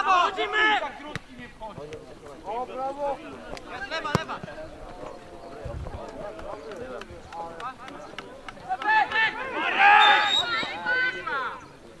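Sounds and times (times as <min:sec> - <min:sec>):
people calling out: 0:08.0 - 0:11.8.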